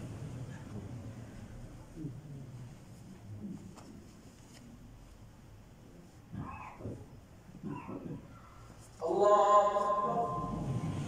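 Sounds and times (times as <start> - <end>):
low human vocal sounds: 1.7 - 3.9.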